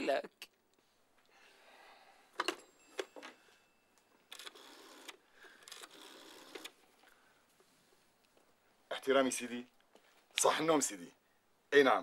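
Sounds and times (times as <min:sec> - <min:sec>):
rotary dial whirring back: 0:04.3 - 0:06.8.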